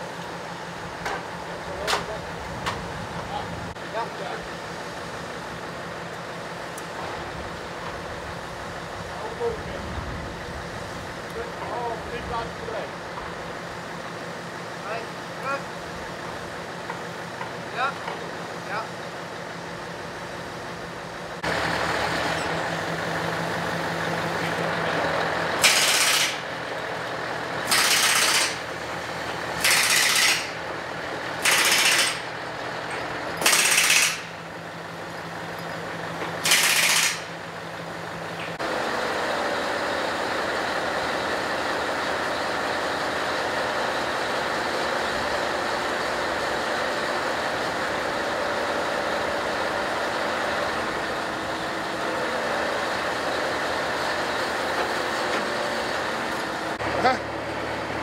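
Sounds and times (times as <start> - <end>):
diesel engine idling: 0.0 - 58.0
truck engine running: 0.0 - 58.0.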